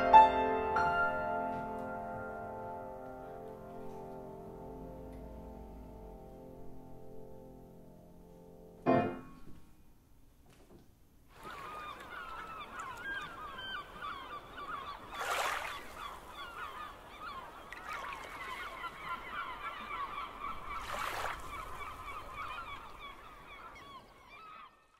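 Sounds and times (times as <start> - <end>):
flock of birds calling: 11.3 - 24.9.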